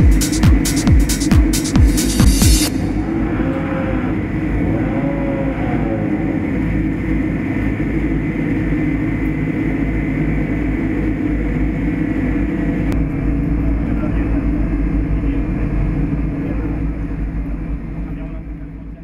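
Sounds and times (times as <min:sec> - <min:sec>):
loud low rumble: 0:00.0 - 0:19.0
indistinct voices: 0:02.4 - 0:08.5, 0:12.9 - 0:19.0.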